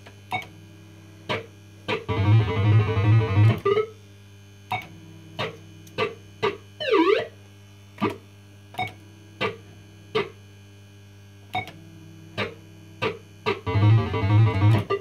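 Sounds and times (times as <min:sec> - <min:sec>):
steady electrical hum: 0:00.0 - 0:15.0
swooping electronic tone: 0:02.1 - 0:03.9, 0:06.8 - 0:07.4, 0:13.6 - 0:15.0.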